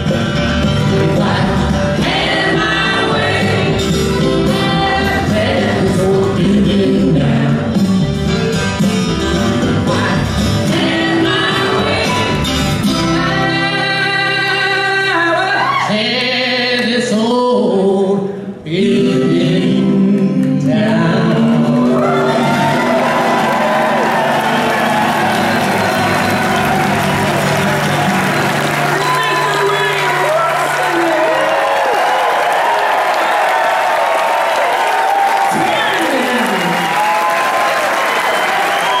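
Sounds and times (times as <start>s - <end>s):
audience applauding and cheering: 21.4s - 39.0s.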